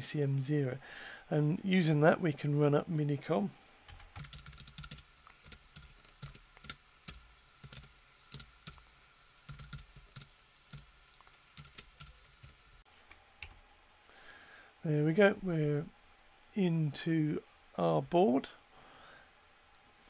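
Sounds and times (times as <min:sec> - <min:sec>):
computer keyboard typing: 0:03.9 - 0:08.9, 0:09.5 - 0:12.6.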